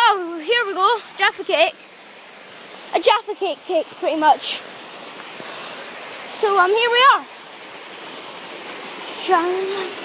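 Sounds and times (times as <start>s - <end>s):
waterfall rushing: 0.0s - 10.0s.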